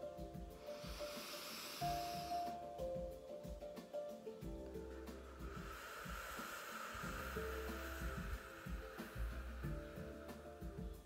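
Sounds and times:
soft instrumental music: 0:00.0 - 0:11.0
slow exhale through pursed lips: 0:00.6 - 0:02.6, 0:05.3 - 0:10.6.

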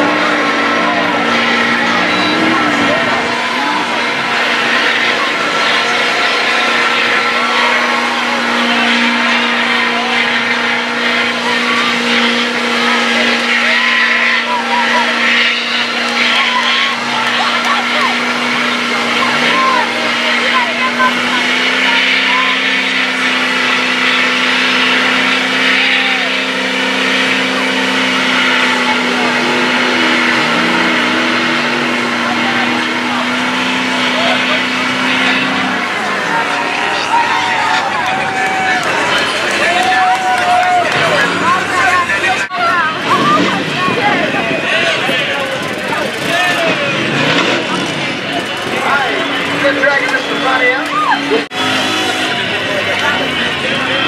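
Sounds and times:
lower engine tone: 0:00.0 - 0:54.0
spectators murmuring: 0:00.0 - 0:54.0
tires grinding through mud: 0:00.0 - 0:54.0
truck engine at high revs: 0:00.0 - 0:54.0.

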